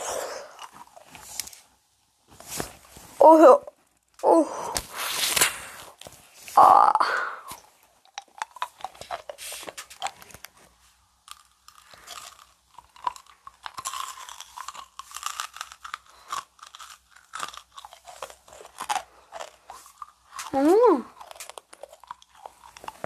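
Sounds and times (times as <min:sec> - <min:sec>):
candy being chewed and crunched: 0:00.0 - 0:01.7, 0:03.7 - 0:23.0.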